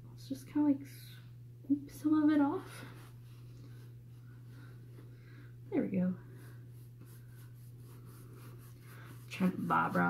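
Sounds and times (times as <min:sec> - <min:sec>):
paintbrush scratching on canvas: 0:06.3 - 0:10.0.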